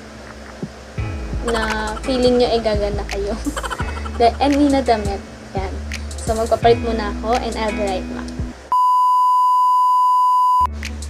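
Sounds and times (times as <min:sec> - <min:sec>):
steady test tone beep: 0:08.7 - 0:10.7.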